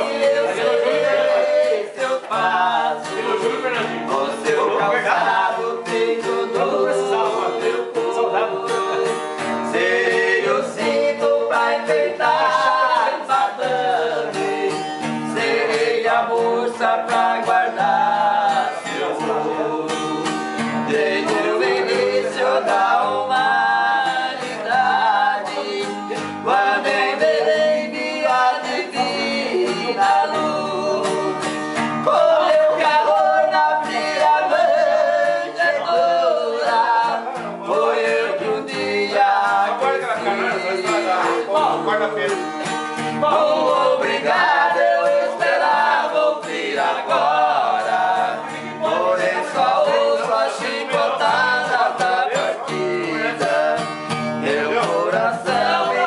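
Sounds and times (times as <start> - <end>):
acoustic guitar strumming: 0.0 - 56.0
man singing: 0.0 - 56.0.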